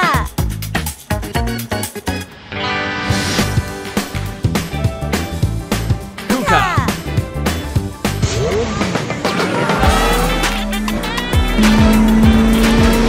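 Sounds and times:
upbeat music: 0.0s - 2.4s, 3.1s - 13.0s
racing car engine: 6.3s - 13.0s.

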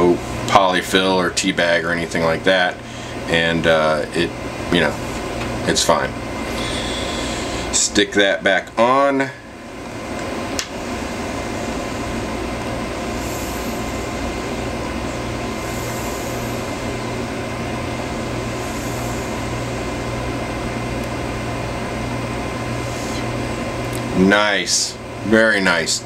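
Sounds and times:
steady low hum: 0.0s - 26.0s
e-cigarette puff hisses: 13.1s - 14.2s, 15.6s - 16.8s.

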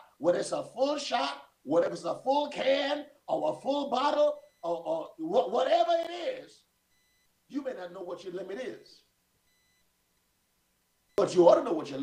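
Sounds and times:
faint steady tone: 3.0s - 5.1s, 6.6s - 7.5s, 9.0s - 11.3s.

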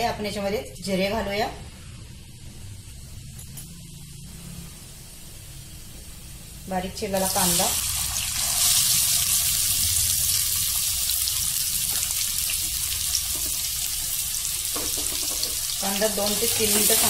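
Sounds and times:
onion sizzling in hot oil: 4.6s - 17.0s.

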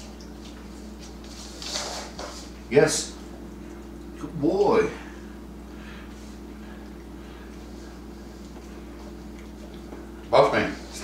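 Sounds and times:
steady low hum: 0.0s - 11.0s
dog scuffing on wooden floor: 1.0s - 2.6s.

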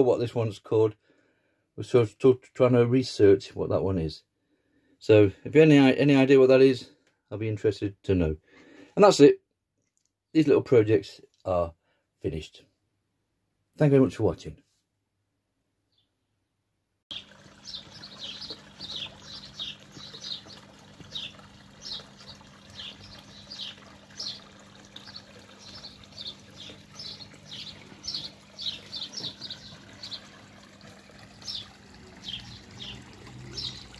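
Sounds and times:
small birds chirping: 17.1s - 33.9s
water trickling: 17.1s - 33.9s.

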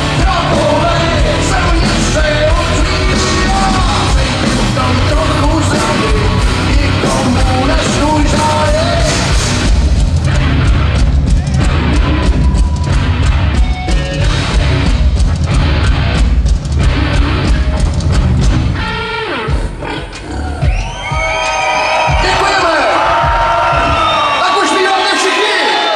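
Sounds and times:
live rock band playing: 0.0s - 25.4s
crowd voices and shouts: 0.0s - 25.9s.

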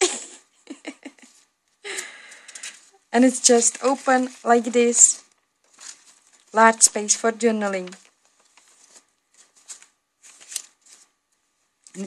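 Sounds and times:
paper rustling: 1.1s - 12.0s.

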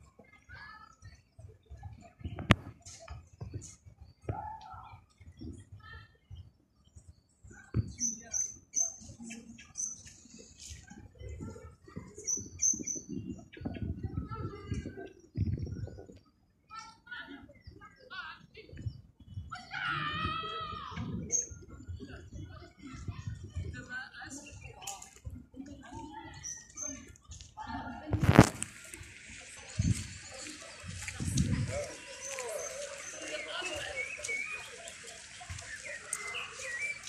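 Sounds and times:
birds chirping: 0.1s - 37.0s.

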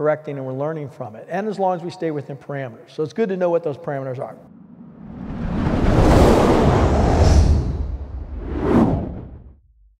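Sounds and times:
whoosh: 4.4s - 9.6s
low rumble: 4.4s - 9.9s.

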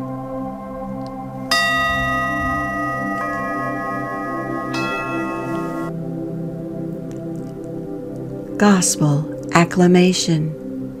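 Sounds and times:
bell-like chime: 1.5s - 5.9s
held musical chord: 1.5s - 6.2s.

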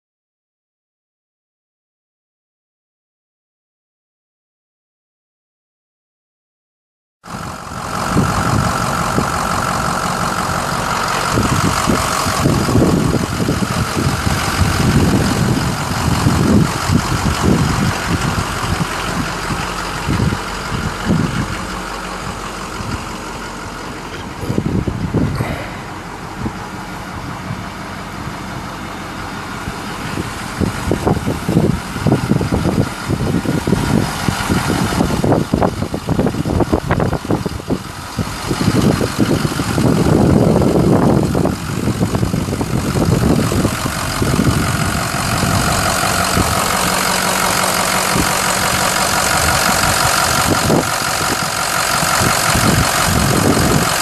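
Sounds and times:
diesel engine idling: 7.2s - 54.0s.

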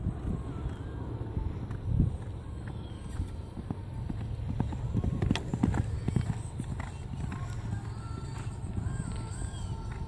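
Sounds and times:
hoofbeats on sand: 1.5s - 10.0s.

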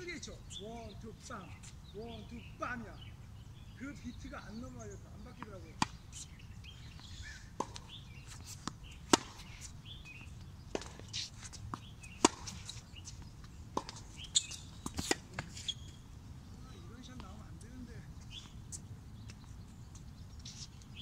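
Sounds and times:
tennis ball bouncing: 4.5s - 16.0s
racquet hitting tennis ball: 7.5s - 9.6s, 10.7s - 12.8s, 13.7s - 15.7s.

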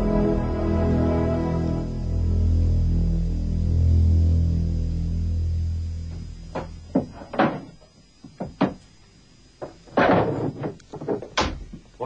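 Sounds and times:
music: 0.0s - 7.2s
folders knocking and bumping: 6.6s - 8.8s, 9.6s - 11.8s.

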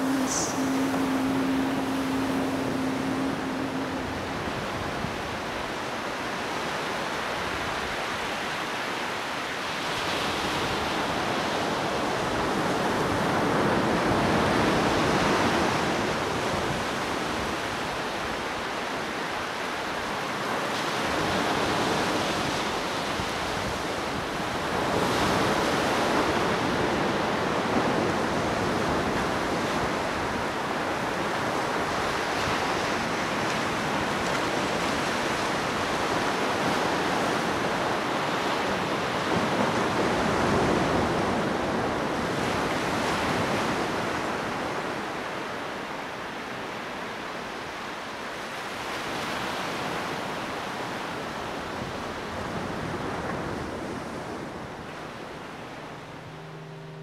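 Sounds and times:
sea waves breaking on beach: 0.0s - 57.0s.

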